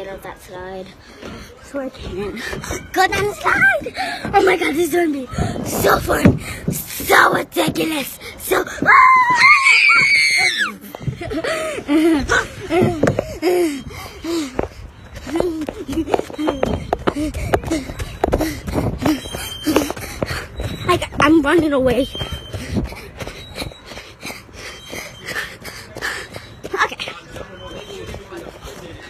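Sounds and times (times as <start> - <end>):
girl screaming with excitement: 8.9 - 10.8
running footfalls: 12.7 - 29.0.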